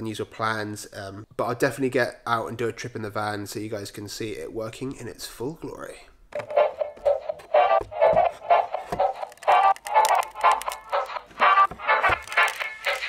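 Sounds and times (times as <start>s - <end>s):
background music repeated notes: 6.4s - 13.0s.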